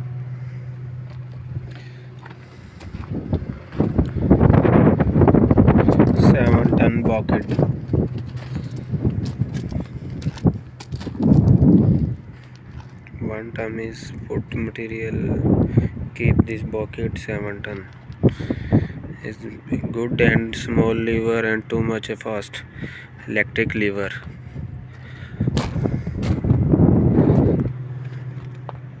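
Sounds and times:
diesel engine idling: 0.0s - 29.0s
steady low hum: 0.0s - 29.0s
footsteps crunching on gravel: 1.0s - 4.4s, 5.9s - 13.2s, 24.2s - 29.0s
wind buffeting microphone: 2.4s - 28.4s.

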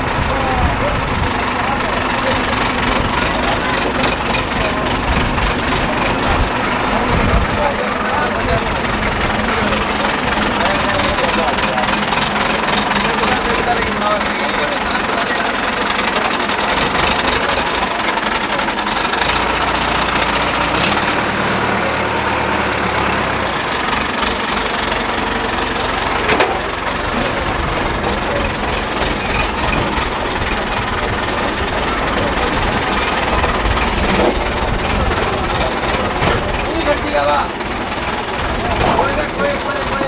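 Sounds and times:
diesel engine running: 0.0s - 40.0s.

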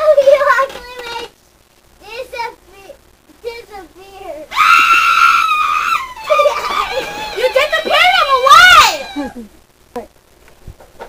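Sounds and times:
voices: 0.0s - 1.4s, 2.0s - 10.2s
shrill high-pitched scream: 4.5s - 9.4s
laughter: 6.0s - 7.5s.

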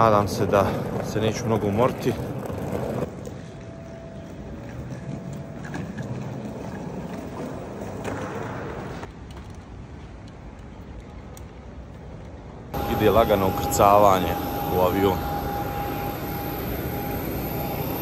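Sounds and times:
airport terminal rumble: 0.0s - 6.9s, 12.7s - 18.0s
faint steady tone: 12.7s - 18.0s.

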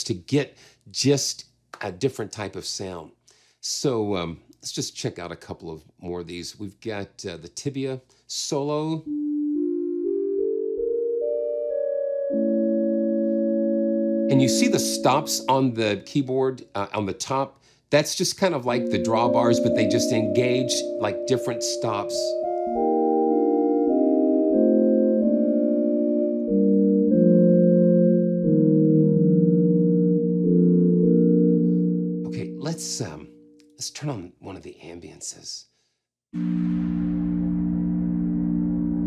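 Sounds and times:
organ chords: 9.0s - 16.4s, 18.3s - 33.7s, 36.4s - 39.0s.

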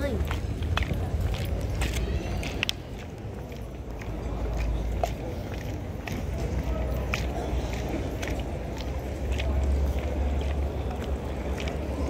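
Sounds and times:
faint voices: 0.0s - 12.0s
footsteps on cobblestones: 0.0s - 12.0s.

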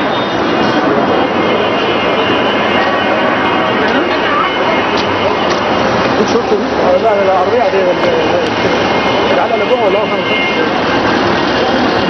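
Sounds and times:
crowd roar: 0.0s - 6.4s.

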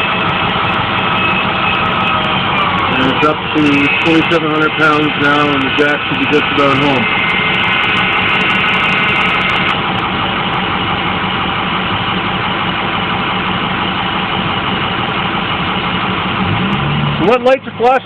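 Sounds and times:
hydraulic pump high whine: 0.0s - 18.0s
steady mechanical drone: 0.0s - 18.0s.

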